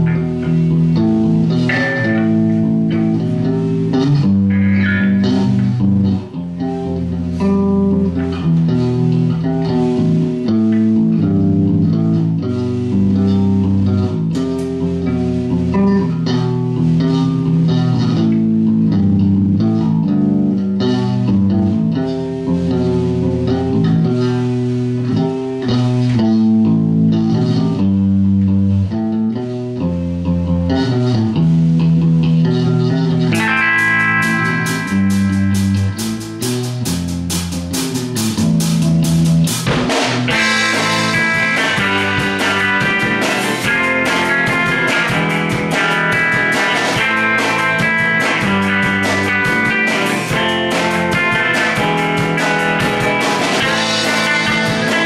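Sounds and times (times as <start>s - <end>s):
bass guitar: 0.0s - 55.0s
electric guitars playing: 0.0s - 55.0s.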